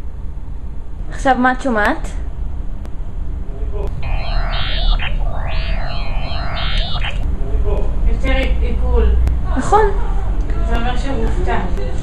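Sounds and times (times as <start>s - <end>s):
eerie sweep of blended tones: 4.0s - 7.3s.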